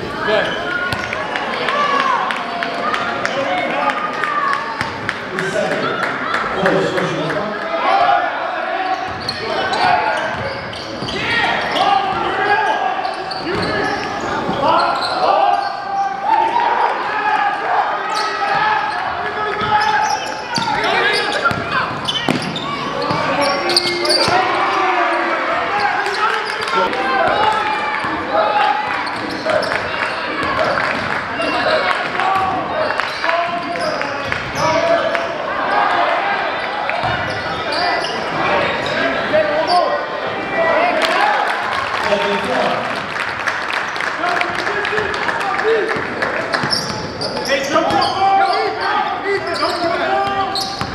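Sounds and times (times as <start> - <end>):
crowd voices and shouts: 0.0 - 50.9.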